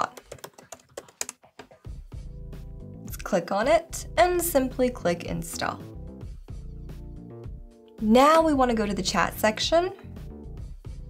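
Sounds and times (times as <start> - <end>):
background music with low bass: 1.4 - 11.0.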